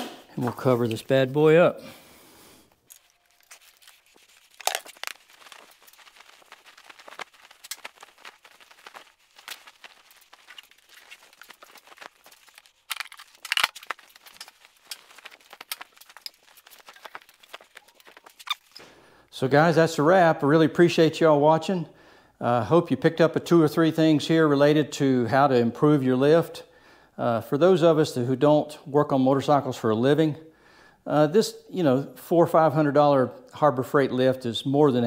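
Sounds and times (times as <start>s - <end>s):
fabric cover rustling: 2.8s - 18.8s.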